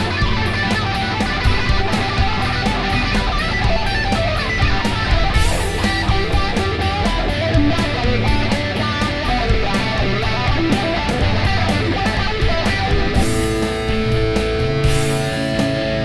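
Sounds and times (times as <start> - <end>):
rock song: 0.0 - 16.0.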